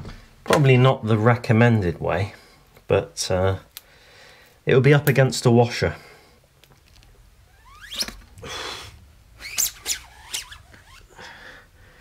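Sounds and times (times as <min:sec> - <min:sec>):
short rising squeaks: 0:07.5 - 0:08.3, 0:09.4 - 0:11.2
breathy hiss: 0:08.4 - 0:09.0.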